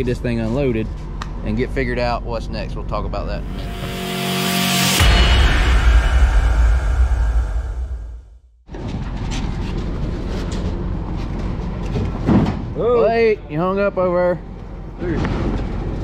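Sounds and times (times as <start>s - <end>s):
deep boom with hiss: 4.9s - 8.4s.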